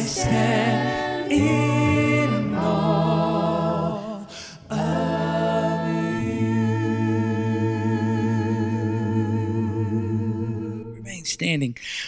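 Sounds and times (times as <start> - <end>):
choir singing a cappella: 0.0 - 11.1.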